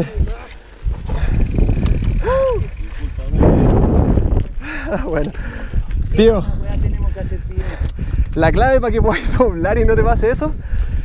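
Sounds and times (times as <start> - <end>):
mountain bike passing close: 0.0 - 7.4
bike tyres rolling over dirt: 0.0 - 9.9
wind rush on microphone: 0.0 - 11.0.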